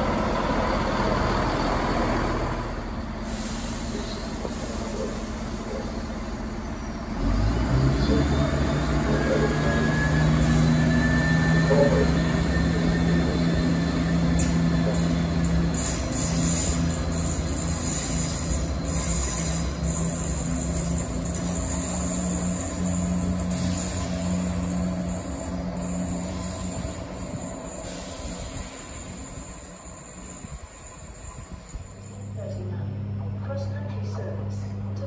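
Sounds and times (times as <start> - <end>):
diesel train droning: 0.0 - 35.0.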